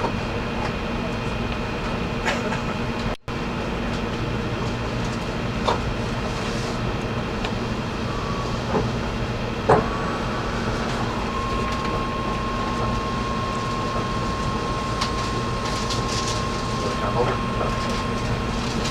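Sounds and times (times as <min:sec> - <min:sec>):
thin steady whine: 0:05.6 - 0:18.9.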